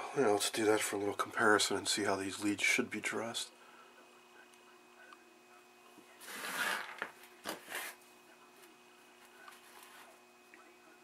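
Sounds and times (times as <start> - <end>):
faint steady hum: 0.0 - 11.0
plastic parts scraping: 6.2 - 8.0.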